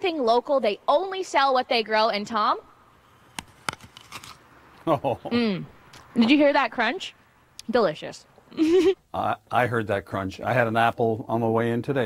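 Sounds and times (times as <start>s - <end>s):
apple bitten with a crunch: 3.3s - 4.4s
chewing crunches: 3.3s - 4.4s.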